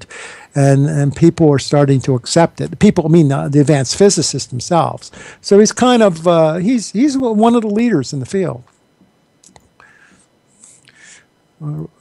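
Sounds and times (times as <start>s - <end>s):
breathy hissy voice sounds: 9.8s - 12.0s.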